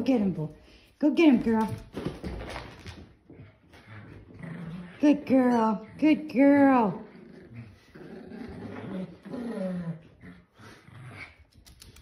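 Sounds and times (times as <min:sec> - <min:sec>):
small dogs growling: 0:03.5 - 0:11.6.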